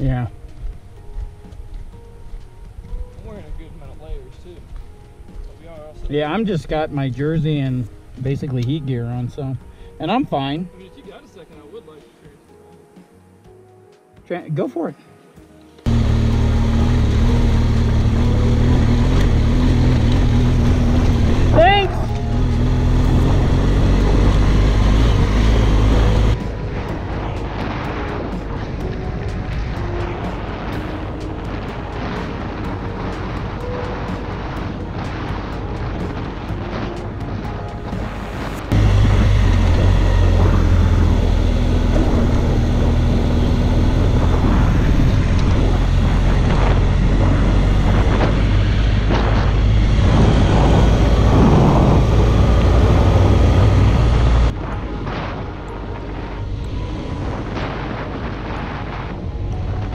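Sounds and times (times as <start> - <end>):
motorcycle engine running: 15.9 - 26.4, 38.7 - 54.5
wind noise on microphone: 20.6 - 59.9.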